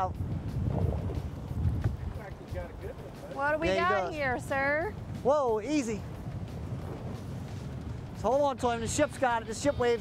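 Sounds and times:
choppy water: 0:00.0 - 0:10.0
wind buffeting microphone: 0:00.0 - 0:10.0.

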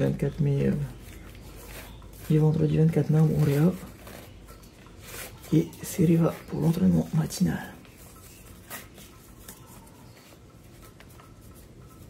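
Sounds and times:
shoelaces rustling and scratching: 0:00.0 - 0:12.0.

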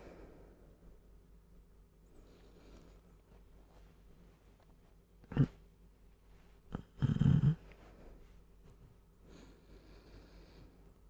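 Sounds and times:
man snoring: 0:06.8 - 0:07.6.

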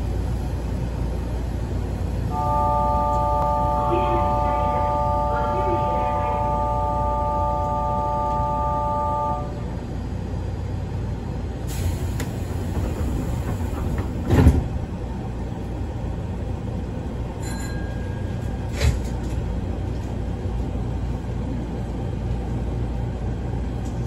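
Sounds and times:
train low steady hum: 0:00.0 - 0:24.0.

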